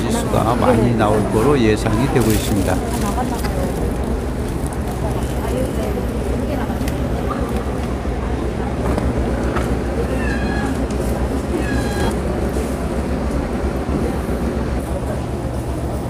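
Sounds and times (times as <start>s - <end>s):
distant voices: 0.0s - 16.0s
short high-pitched cries: 10.1s - 10.9s, 11.5s - 12.2s.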